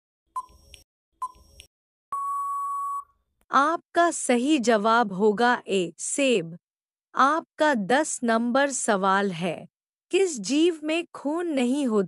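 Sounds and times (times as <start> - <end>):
long steady beep: 2.1 - 3.2
short electronic beep: 2.1 - 3.2.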